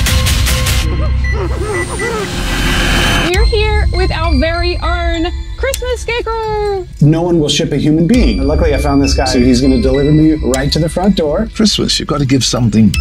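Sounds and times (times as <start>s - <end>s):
held musical tone: 0.6s - 13.0s
stuttering static noise: 1.8s - 3.4s.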